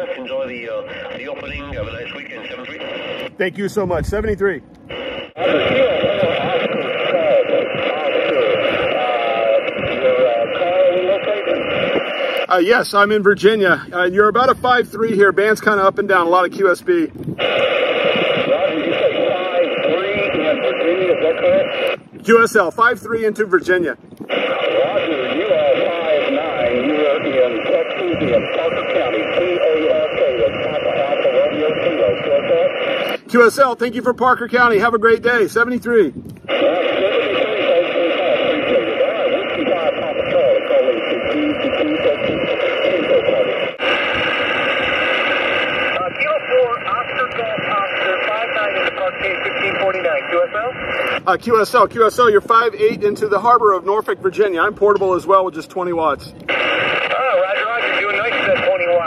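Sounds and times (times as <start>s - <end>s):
radio voice through speaker: 0.0s - 59.0s
static hiss: 4.8s - 12.7s, 17.4s - 22.4s, 24.2s - 33.7s, 36.5s - 51.8s, 56.4s - 59.0s.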